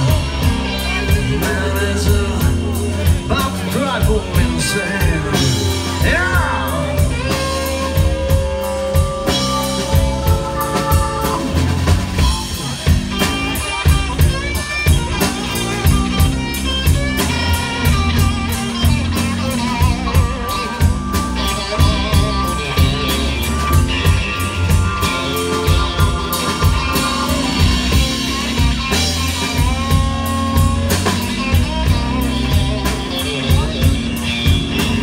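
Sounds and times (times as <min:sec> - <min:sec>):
bass: 0:00.0 - 0:35.0
drum kit: 0:00.0 - 0:35.0
electric guitar lead with bent notes: 0:00.0 - 0:35.0.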